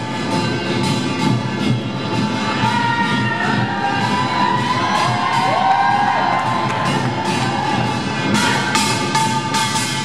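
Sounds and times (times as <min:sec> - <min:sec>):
percussion band drumming: 0:04.1 - 0:10.0.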